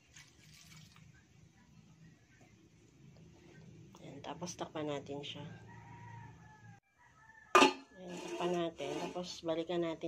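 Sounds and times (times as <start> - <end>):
pot lid clanking on wok: 7.6 - 7.9.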